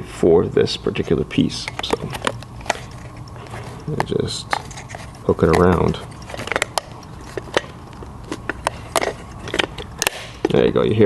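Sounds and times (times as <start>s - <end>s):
light metal scraping: 1.0s - 7.8s.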